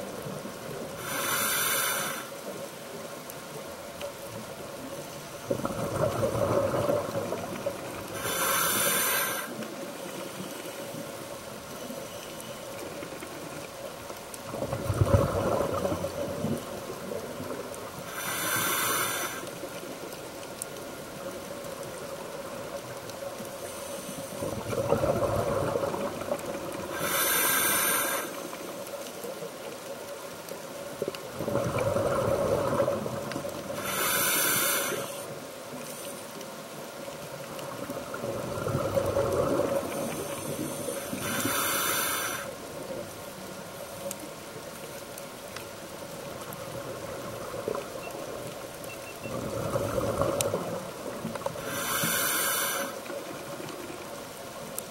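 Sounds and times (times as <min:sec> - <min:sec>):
hissing regulator inhalations: 0:01.0 - 0:02.4, 0:08.1 - 0:09.6, 0:18.1 - 0:19.6, 0:26.9 - 0:28.6, 0:33.8 - 0:36.4, 0:40.1 - 0:42.6, 0:51.6 - 0:53.1
exhaled bubbles rumbling underwater: 0:03.9 - 0:08.4, 0:12.7 - 0:18.2, 0:24.4 - 0:27.1, 0:28.9 - 0:34.0, 0:37.0 - 0:41.5, 0:42.6 - 0:52.0.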